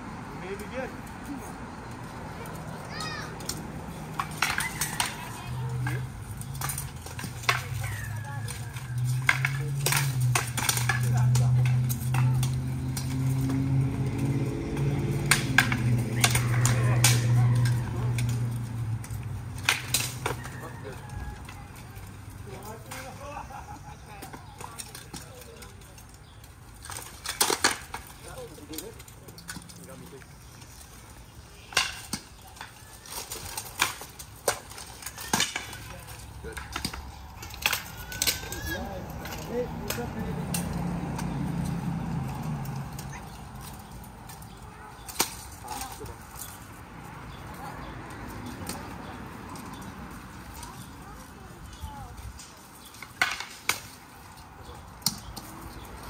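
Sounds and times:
wooden batons clacking: 0.5s - 56.0s.

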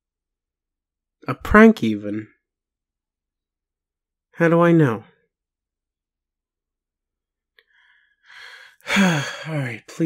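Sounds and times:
man sighing: 8.3s - 9.7s.

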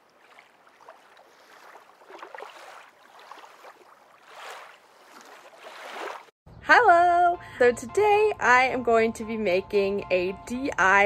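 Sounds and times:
water lapping and sloshing: 0.0s - 6.4s.

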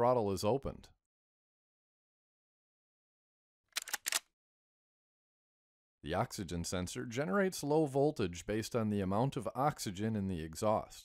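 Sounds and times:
sharp clicks: 3.7s - 4.3s.

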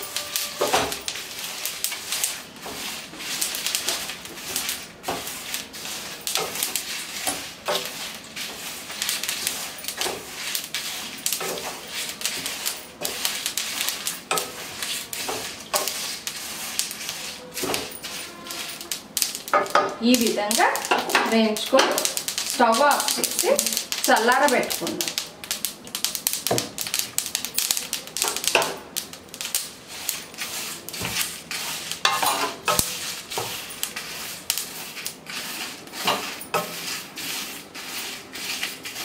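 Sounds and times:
seeds crackling and popping in pan: 0.0s - 39.0s
spatula scraping through seeds: 0.0s - 39.0s.

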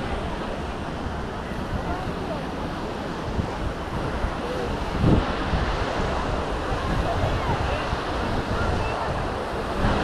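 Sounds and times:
waves washing onto sand: 0.0s - 10.0s
wind buffeting microphone: 0.0s - 10.0s.

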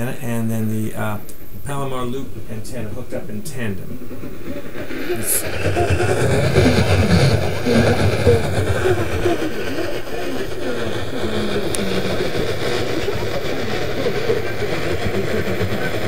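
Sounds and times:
radio static and hiss: 0.0s - 16.0s
faint radio talk: 4.8s - 6.0s, 7.7s - 16.0s.

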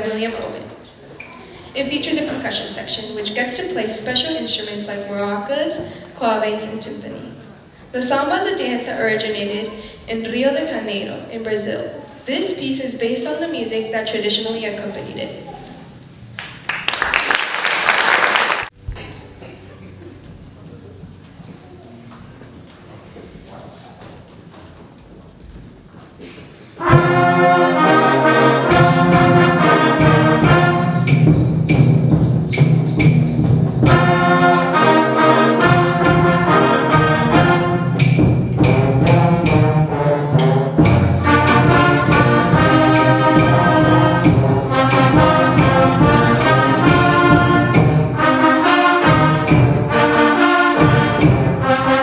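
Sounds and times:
concert band playing samba: 26.8s - 52.0s.

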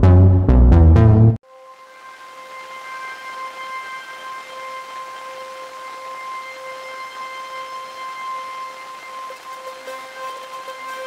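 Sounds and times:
steady siren-like tone: 1.5s - 11.0s.

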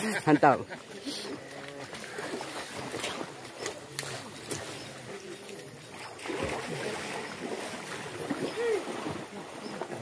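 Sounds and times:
river water washing: 0.0s - 10.0s.

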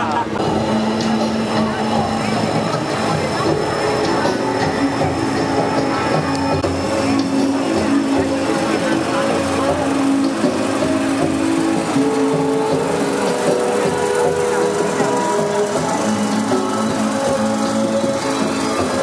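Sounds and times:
street crowd hubbub: 0.0s - 19.0s
truck engine running: 0.0s - 19.0s.

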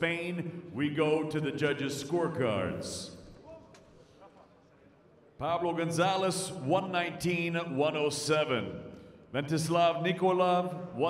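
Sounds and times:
public address announcement echo: 0.0s - 3.6s, 5.4s - 11.0s.

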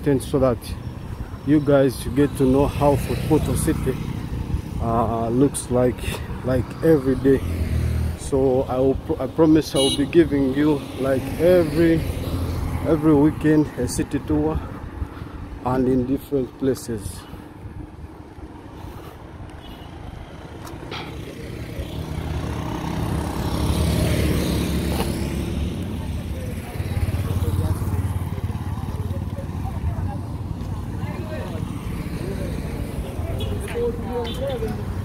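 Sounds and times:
vehicle passing: 1.4s - 16.6s, 17.2s - 35.0s.

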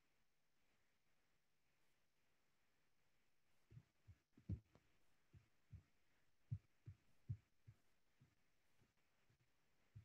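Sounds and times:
faint low thuds: 3.7s - 5.9s.

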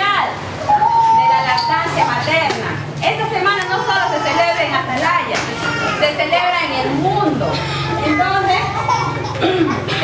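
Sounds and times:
woman talking: 0.0s - 9.0s
children's voices: 3.6s - 4.7s, 5.4s - 10.0s.

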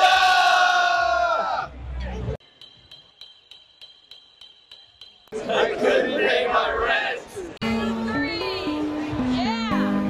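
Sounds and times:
group of people shouting: 0.0s - 1.7s.

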